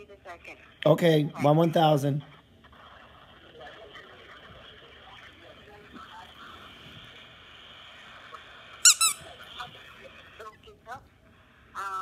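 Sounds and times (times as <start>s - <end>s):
squeaky dog toy squeaks: 8.8s - 9.3s.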